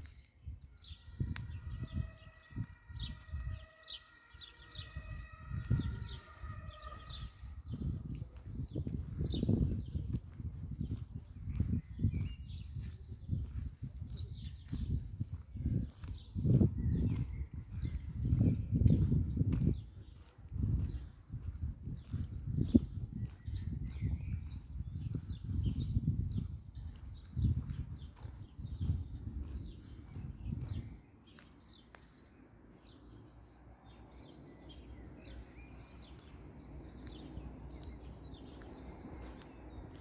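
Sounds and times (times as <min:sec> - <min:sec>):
wind buffeting microphone: 0:00.0 - 0:40.0
small birds chirping: 0:05.8 - 0:40.0.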